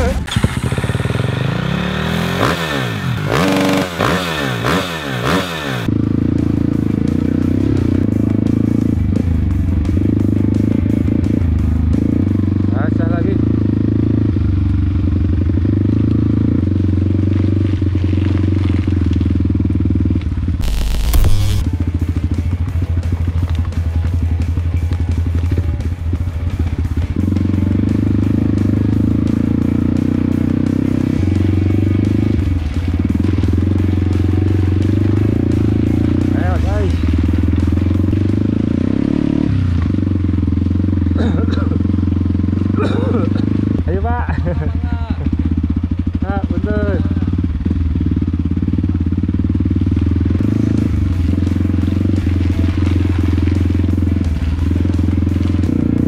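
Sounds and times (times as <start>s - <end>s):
dirt bike engine running: 0.0s - 56.0s
loud burst of noise: 20.6s - 21.7s.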